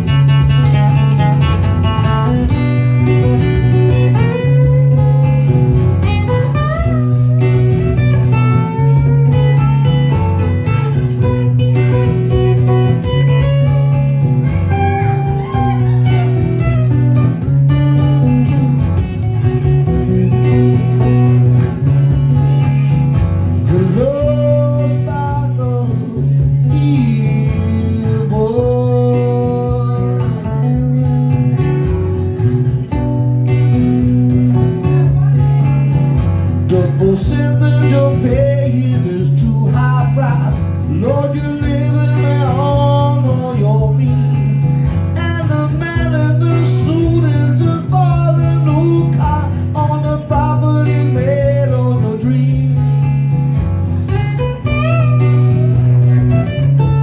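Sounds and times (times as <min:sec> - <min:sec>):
blues-rock acoustic guitar: 0:00.0 - 0:57.0.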